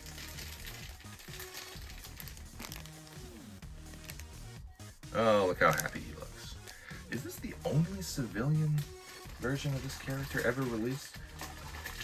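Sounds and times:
plastic bag crinkling: 0.0 - 4.5, 5.5 - 12.0
quiet background music: 0.0 - 12.0.

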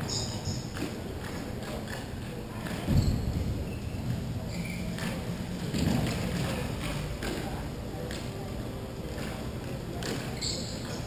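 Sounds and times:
low thump: 2.9 - 5.1
sticks and puck clacking: 4.5 - 11.0.

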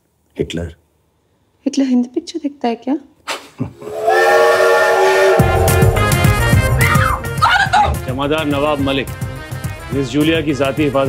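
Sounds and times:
steam locomotive whistle: 3.8 - 7.4
music with heavy low beat: 5.4 - 7.4.

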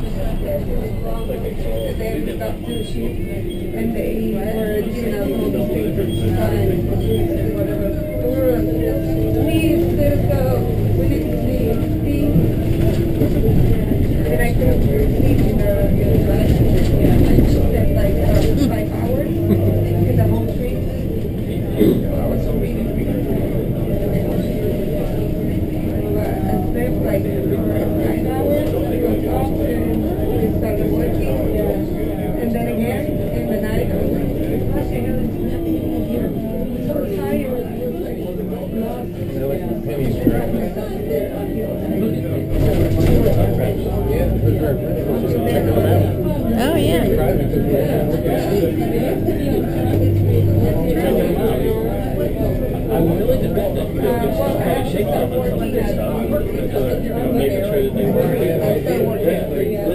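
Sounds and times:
bus engine and road rumble: 0.0 - 59.9
indistinct passenger voices: 0.0 - 59.9.

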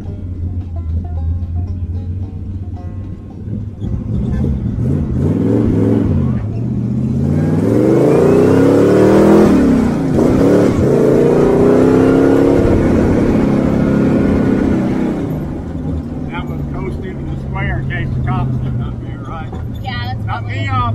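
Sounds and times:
car engine revving hard: 3.5 - 20.9.

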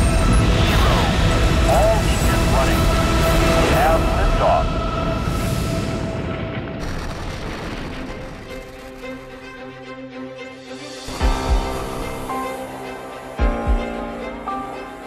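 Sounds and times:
steady musical tones: 0.0 - 6.8
rocket lift-off rumble: 0.0 - 9.4
music: 0.0 - 15.0.

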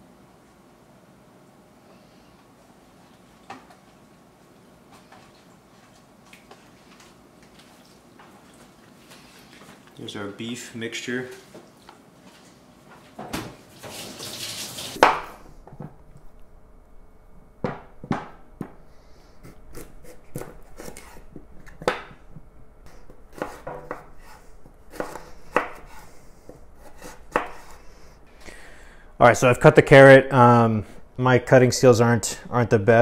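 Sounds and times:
knife cutting on wooden board: 19.4 - 21.9, 22.9 - 27.8.

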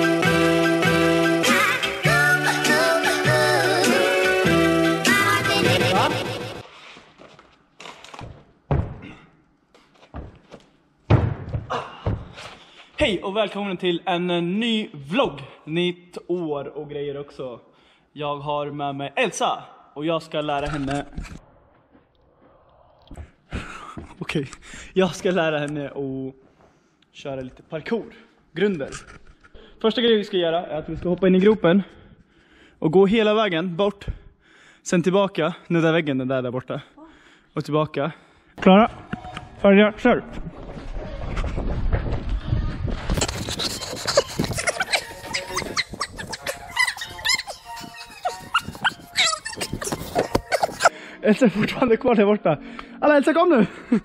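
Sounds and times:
foam blocks rustling and squeaking: 40.3 - 50.9.

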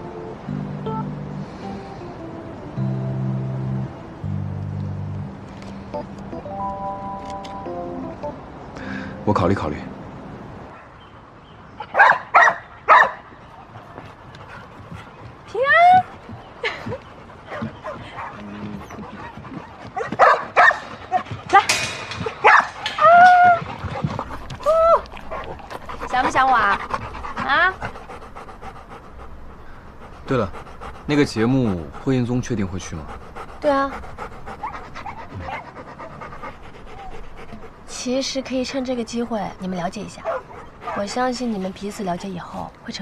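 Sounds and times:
dog low whine: 14.2 - 32.1, 33.0 - 37.9
dog whimpering and yipping: 22.4 - 27.9, 40.2 - 41.2.

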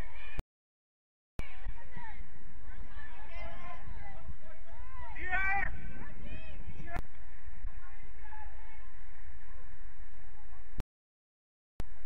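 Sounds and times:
distant shouted voices: 1.4 - 10.8
steady low rumble: 1.4 - 10.8.

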